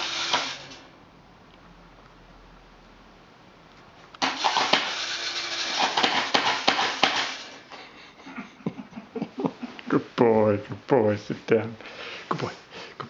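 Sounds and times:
small electric motor clattering: 0.0 - 0.9, 4.2 - 7.6.

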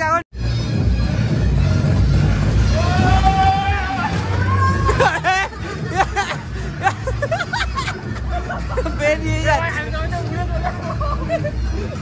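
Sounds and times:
background music: 0.0 - 12.0
people talking and laughing: 1.0 - 12.0.

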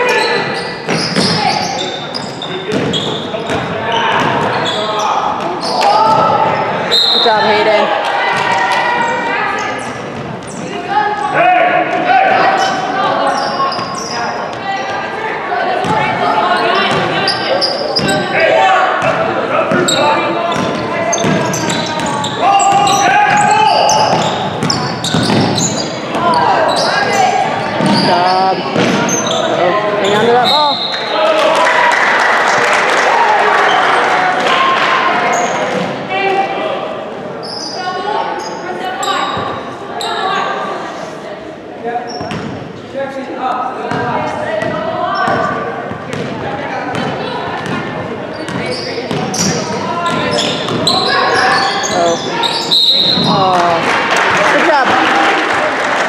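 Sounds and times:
loud crowd noise: 0.0 - 56.0
basketball bouncing on court: 2.7 - 4.6, 19.0 - 26.4, 27.7 - 28.1, 28.7 - 29.2, 42.2 - 42.6, 43.9 - 51.4, 53.0 - 53.4
people shouting: 22.4 - 24.3.

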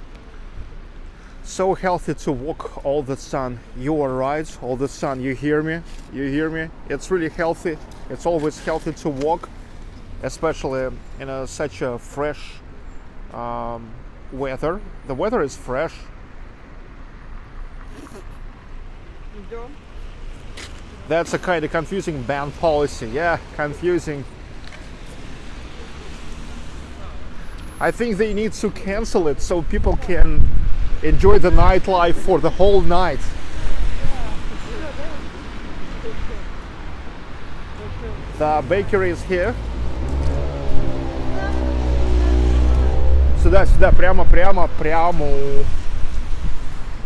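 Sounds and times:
rumble of passing cars: 0.0 - 47.0
vehicle engine running: 38.0 - 44.5.

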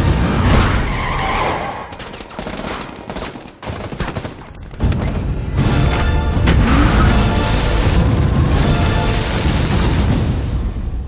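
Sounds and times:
rapid gunfire: 1.7 - 10.4
music: 4.7 - 11.0.

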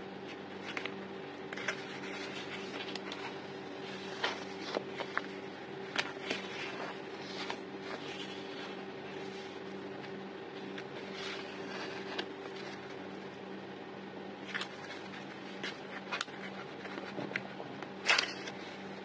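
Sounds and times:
steady low hum: 0.0 - 19.0
sticker sheets crinkling: 0.2 - 13.1, 14.4 - 19.0.

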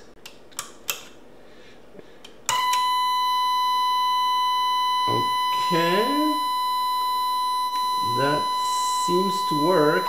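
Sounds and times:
high-pitched electronic tone: 2.6 - 10.0.

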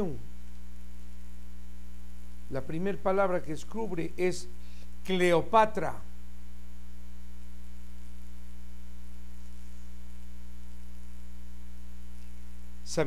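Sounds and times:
mains hum: 0.0 - 13.0.

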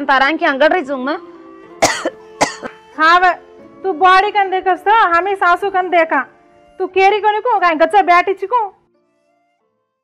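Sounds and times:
soft background music note: 0.0 - 10.0.

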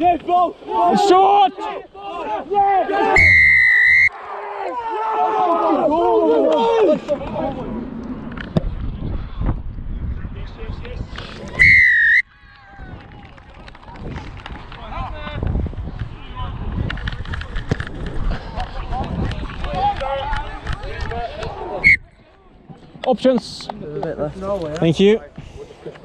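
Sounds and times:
distant players shouting: 0.0 - 7.7
referee's whistle blast: 3.2 - 4.1, 11.6 - 12.2
wind rumble on microphone: 7.1 - 11.7, 12.3 - 21.8.

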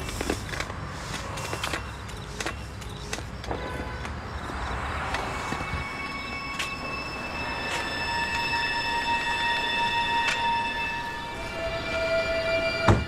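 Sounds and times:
suspense music high thin tones: 5.0 - 13.0.

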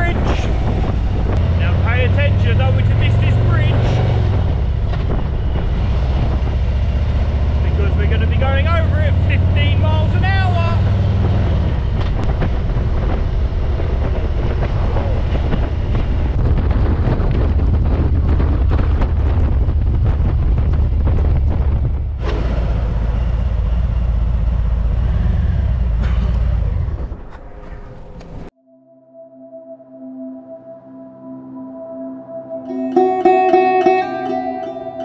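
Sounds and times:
wind noise on microphone: 0.0 - 27.4
motorcycle engine running: 0.0 - 28.5
soft music: 28.5 - 35.0.

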